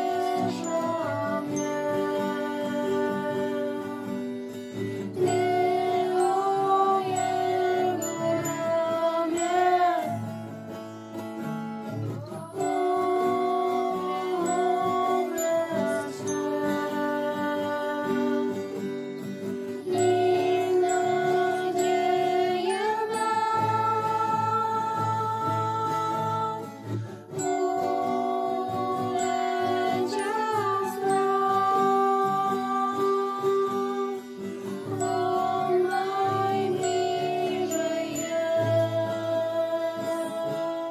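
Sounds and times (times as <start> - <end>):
children and woman singing: 0.0 - 10.8, 11.4 - 40.9
acoustic guitar: 0.0 - 40.9
glockenspiel: 0.0 - 40.9.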